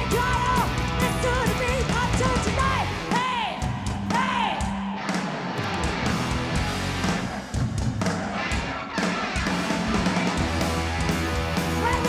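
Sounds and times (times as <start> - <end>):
hard rock band playing: 0.0 - 12.0.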